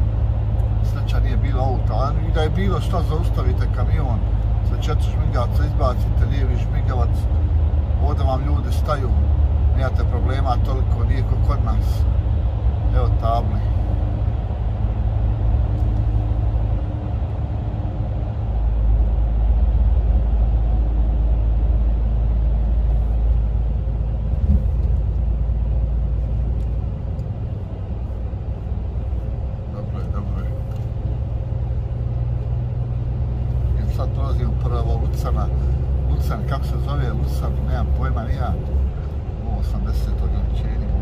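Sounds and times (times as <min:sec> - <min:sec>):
truck engine and tyres droning: 0:00.0 - 0:41.0.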